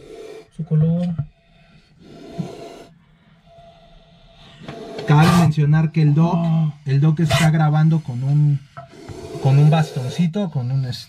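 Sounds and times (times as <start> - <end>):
snake hissing: 0.0 - 0.5, 1.3 - 10.9.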